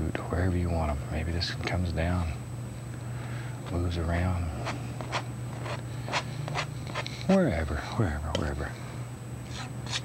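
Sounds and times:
palette knife scraping canvas: 4.6s - 7.1s, 9.5s - 10.0s.

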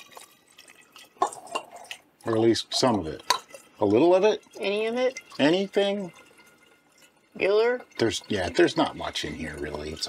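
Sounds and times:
water trickling through funnel into jug: 0.0s - 10.0s.

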